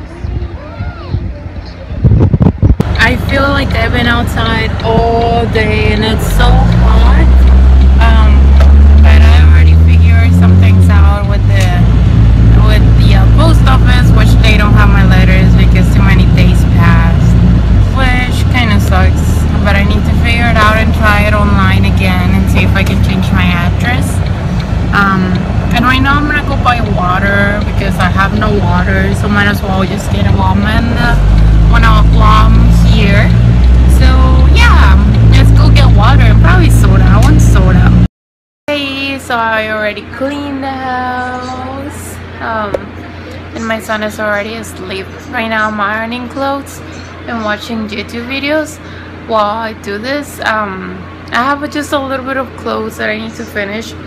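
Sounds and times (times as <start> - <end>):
song with deep bass and singing: 0.0 - 38.0
road and wind noise in car: 0.0 - 38.1.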